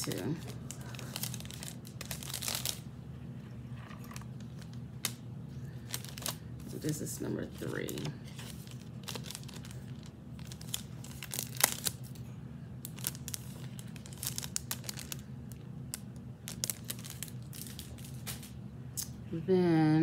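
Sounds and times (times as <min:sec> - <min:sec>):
plastic bag crinkling: 0:00.0 - 0:02.9, 0:03.7 - 0:18.6.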